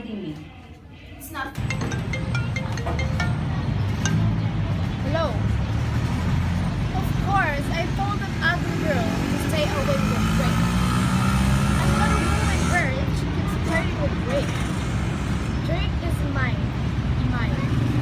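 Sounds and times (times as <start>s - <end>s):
road traffic rumble: 1.6s - 18.0s
vehicle engine: 3.2s - 18.0s.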